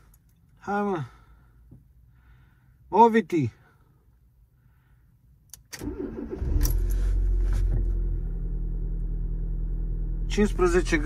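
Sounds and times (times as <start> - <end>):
ignition click: 5.5 - 8.2
car engine starting and idling: 5.5 - 11.0.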